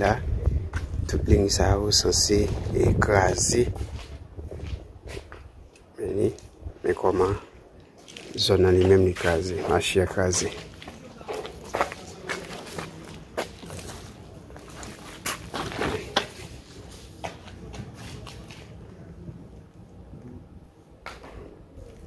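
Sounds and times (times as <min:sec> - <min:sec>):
low outdoor background: 0:00.0 - 0:22.0
faint voices: 0:08.4 - 0:22.0.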